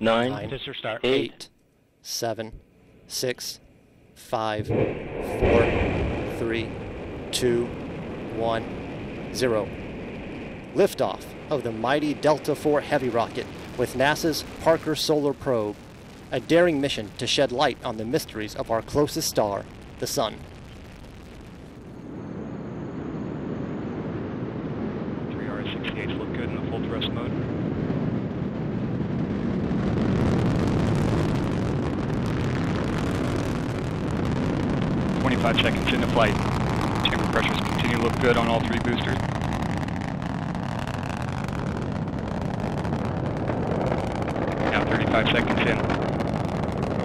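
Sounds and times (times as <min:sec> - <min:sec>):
rocket engines roaring: 0:00.0 - 0:01.4, 0:04.2 - 0:47.0.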